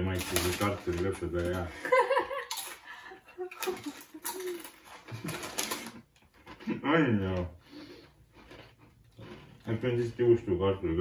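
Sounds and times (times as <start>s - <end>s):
crisps crunching while chewed: 0.0s - 1.6s, 2.4s - 2.9s, 3.5s - 10.4s
plastic bag crinkling: 0.0s - 1.7s, 3.5s - 6.6s.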